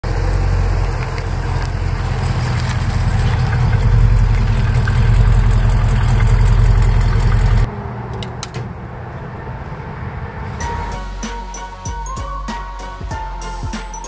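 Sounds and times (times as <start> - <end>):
car engine rumbling: 0.0 - 11.2.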